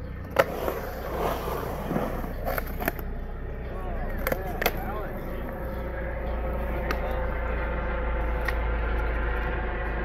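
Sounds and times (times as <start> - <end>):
skateboard wheels rolling on concrete: 0.0 - 10.0
skateboard clacking on concrete: 0.2 - 3.1, 4.0 - 5.6.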